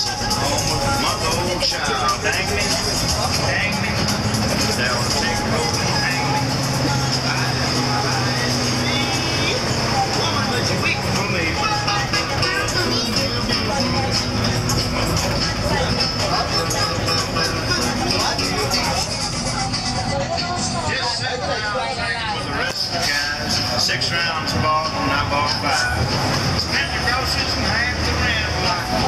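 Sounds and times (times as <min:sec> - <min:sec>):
bus engine running: 0:00.0 - 0:29.0
music playing: 0:00.0 - 0:29.0
passengers chatting: 0:00.0 - 0:29.0.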